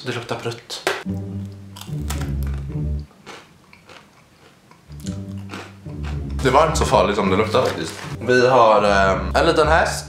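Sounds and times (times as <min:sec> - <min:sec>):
background music with low bass: 0:01.1 - 0:03.1, 0:04.9 - 0:10.0
person chewing dried fish: 0:01.4 - 0:06.4.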